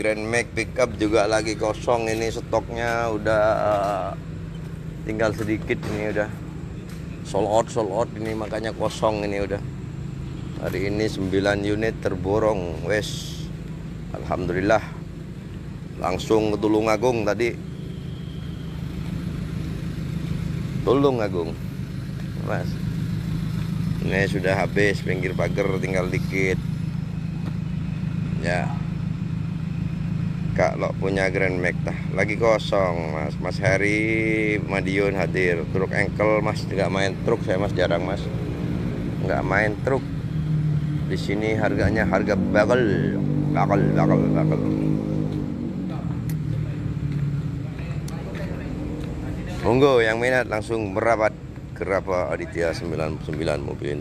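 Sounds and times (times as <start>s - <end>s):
vehicle engine idling: 0.0s - 54.0s.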